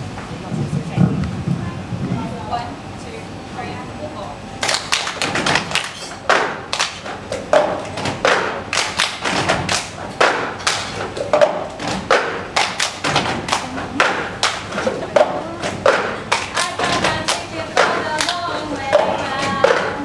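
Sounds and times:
hand claps: 4.6 - 20.0.

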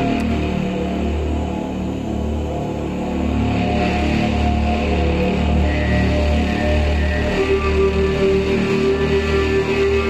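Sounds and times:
low electronic drone: 0.0 - 10.0.

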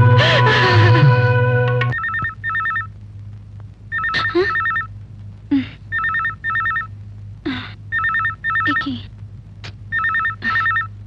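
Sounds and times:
music: 0.0 - 2.0
low steady hum: 0.0 - 11.0
telephone ringing: 1.9 - 2.9, 3.9 - 4.9, 5.9 - 6.9, 7.9 - 8.9, 9.9 - 10.9.

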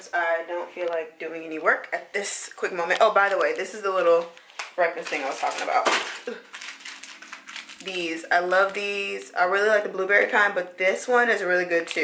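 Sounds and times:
plastic packet crackling: 2.9 - 9.3.

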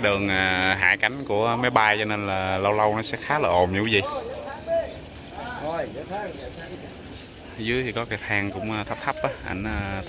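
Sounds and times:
background voices talking: 0.0 - 10.0
narration voice: 0.0 - 10.0.

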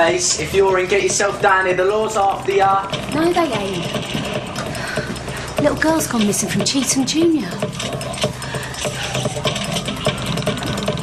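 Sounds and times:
rhythmic machine-like sound with ticks: 0.0 - 11.0.

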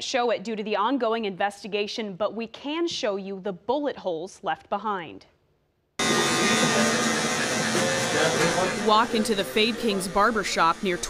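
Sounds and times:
electric hair clippers buzzing: 6.0 - 11.0.

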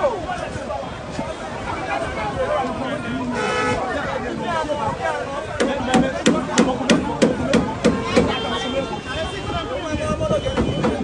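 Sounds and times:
rapid banging on metal: 5.6 - 8.4.

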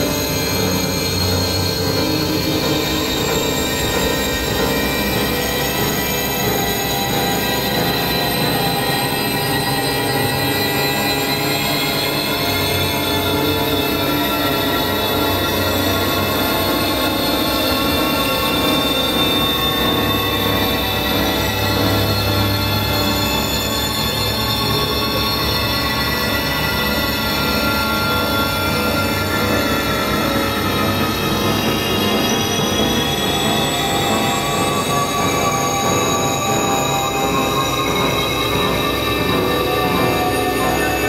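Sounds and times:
electronic drone music: 0.0 - 41.0.

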